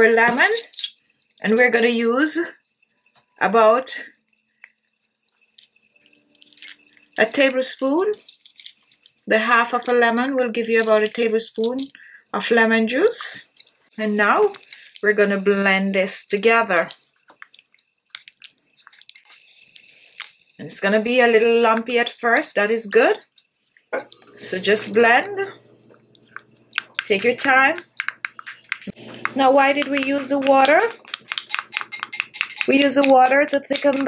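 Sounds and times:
juice dripping into metal spoon: 0:04.1 - 0:09.3, 0:16.8 - 0:20.6, 0:25.9 - 0:34.0
spoon scraping glass bowl: 0:26.2 - 0:34.0.

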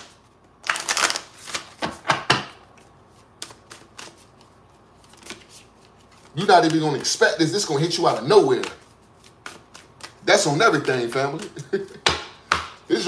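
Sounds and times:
cards being shuffled: 0:00.0 - 0:07.2, 0:07.8 - 0:12.0.

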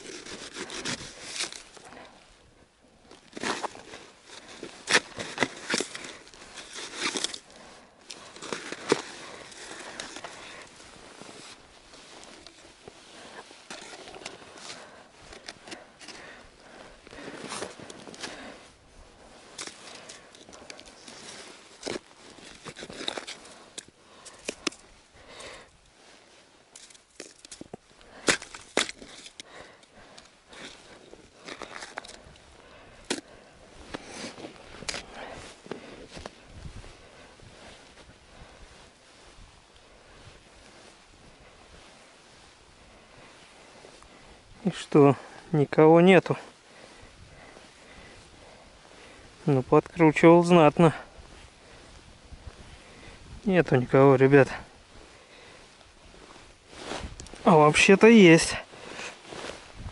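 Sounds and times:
rustling and scraping: 0:00.0 - 0:02.4, 0:03.0 - 0:59.9.

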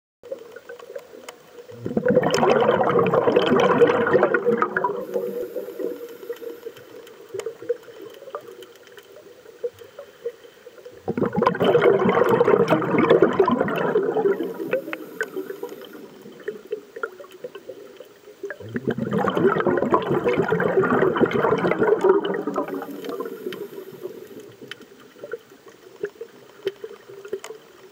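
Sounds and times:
gurgling underwater bubbles: 0:00.2 - 0:27.9
faint clicks: 0:00.3 - 0:01.7, 0:04.7 - 0:10.9, 0:14.3 - 0:18.6, 0:22.0 - 0:27.9.

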